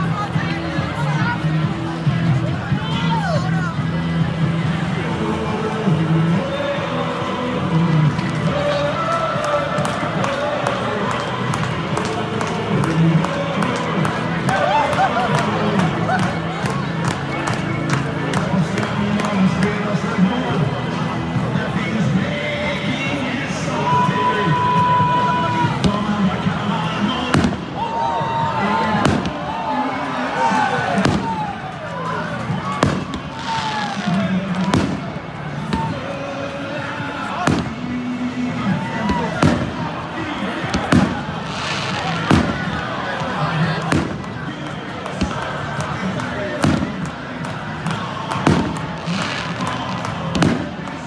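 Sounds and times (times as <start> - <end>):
large crowd noise: 0.0 - 51.0
crowd chanting: 4.7 - 51.0
fireworks bangs: 25.6 - 27.8, 28.7 - 31.6, 32.4 - 36.2, 37.3 - 38.2, 38.8 - 51.0
firecracker bang: 29.0 - 29.4, 40.7 - 42.8.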